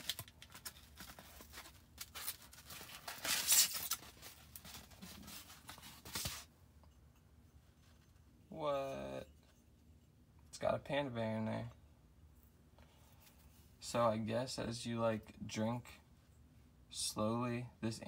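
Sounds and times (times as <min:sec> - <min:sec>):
cardboard box and foam rustling: 0:00.0 - 0:06.5.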